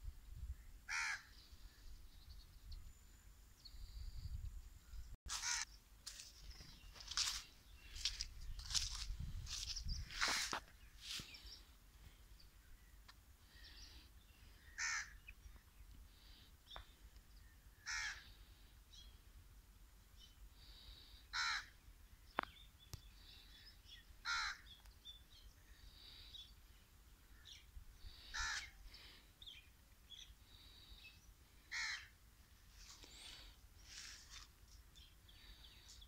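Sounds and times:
small birds chirping: 0:00.5 - 0:19.4, 0:20.1 - 0:36.0
crow cawing: 0:00.9 - 0:01.3, 0:05.3 - 0:05.7, 0:14.6 - 0:15.2, 0:17.8 - 0:18.4, 0:21.3 - 0:21.8, 0:24.2 - 0:24.7, 0:28.2 - 0:28.8, 0:31.6 - 0:32.1.

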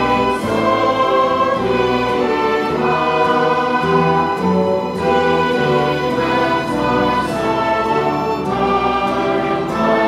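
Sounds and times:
congregation singing a hymn: 0:00.0 - 0:10.0
instrumental accompaniment: 0:00.0 - 0:10.0.

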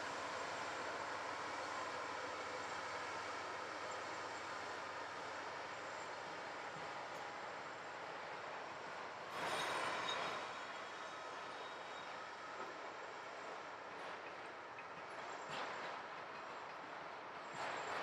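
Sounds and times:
freight train wheels rumbling: 0:00.0 - 0:18.0.

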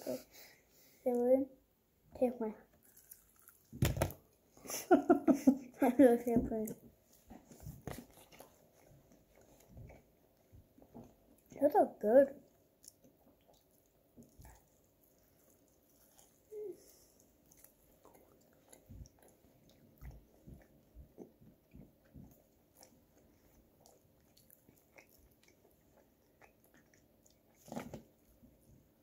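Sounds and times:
wet chewing and mouth smacks: 0:02.8 - 0:03.7, 0:12.5 - 0:28.4.

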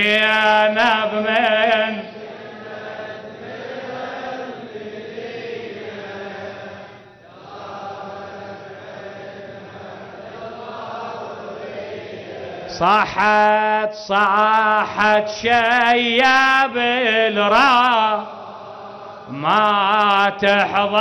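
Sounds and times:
person reciting: 0:00.0 - 0:06.7, 0:12.6 - 0:21.0
men chanting in unison: 0:00.0 - 0:21.0.

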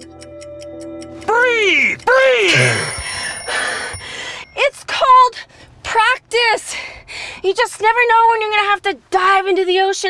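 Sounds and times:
man shouting: 0:01.3 - 0:03.0
high steady ringing tone: 0:02.5 - 0:05.3.

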